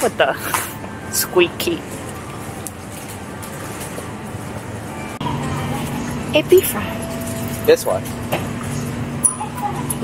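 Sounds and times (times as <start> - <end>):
supermarket hum: 0.0 - 10.0.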